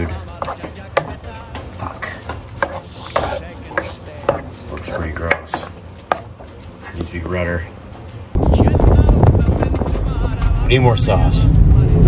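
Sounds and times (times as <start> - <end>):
spatula scraping a pot: 0.0 - 6.4
faint background music: 0.0 - 12.0.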